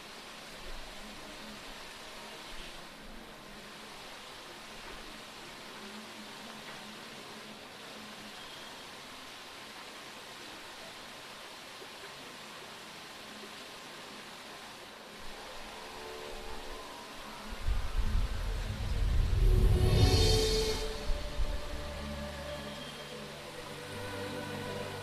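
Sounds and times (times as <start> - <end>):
background hiss: 0.0 - 25.0.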